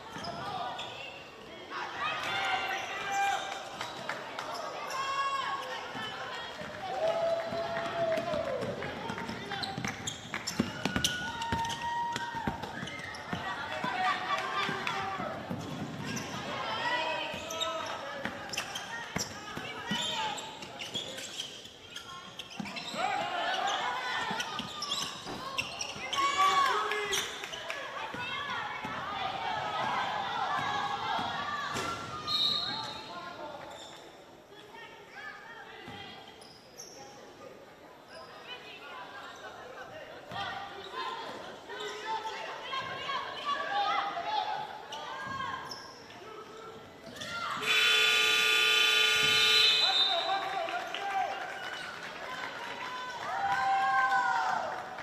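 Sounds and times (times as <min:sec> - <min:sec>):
gymnasium game horn: 0:47.6 - 0:50.5.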